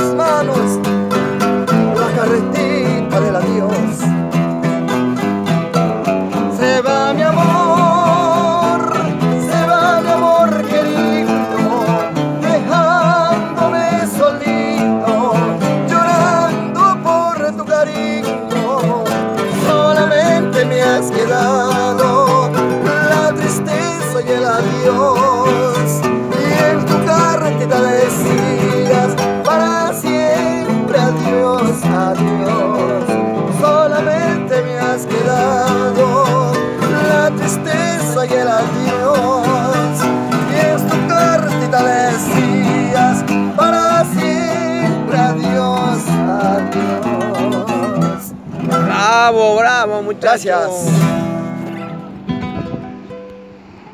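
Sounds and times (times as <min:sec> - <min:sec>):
acoustic guitars playing: 0:00.0 - 0:53.9.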